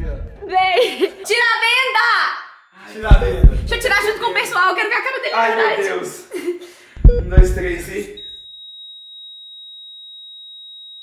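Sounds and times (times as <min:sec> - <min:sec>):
high-pitched electronic beep tone: 0:08.2 - 0:10.6.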